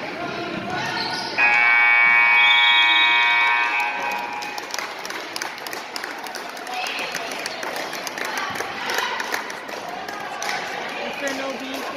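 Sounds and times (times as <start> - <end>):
crowd voices: 0.0 - 11.9
scoreboard horn blast: 1.4 - 4.6.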